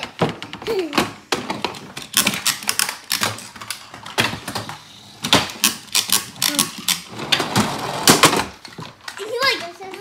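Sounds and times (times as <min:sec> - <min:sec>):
toy cars clattering on wood: 0:00.0 - 0:10.0.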